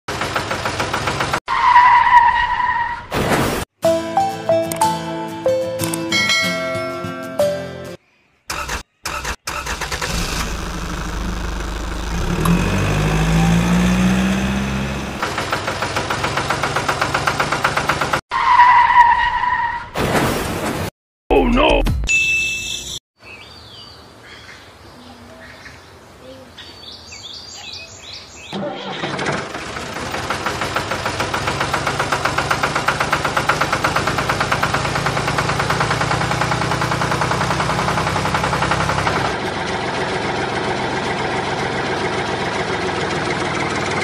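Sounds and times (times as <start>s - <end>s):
engine puttering: 0.1s - 1.4s, 8.5s - 18.2s, 28.5s - 44.0s
tire squeal: 1.5s - 3.1s, 18.3s - 19.9s
music: 3.8s - 8.0s
bright ding with ringing tones: 22.1s - 23.0s.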